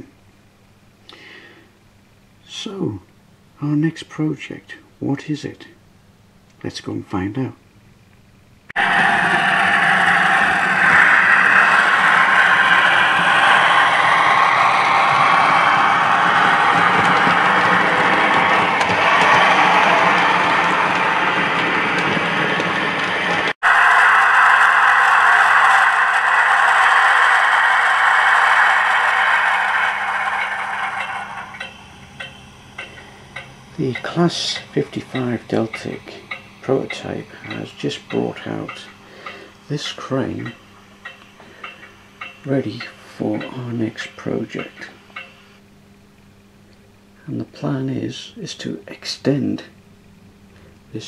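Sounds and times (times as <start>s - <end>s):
model train whirring and rattling: 8.8s - 45.5s.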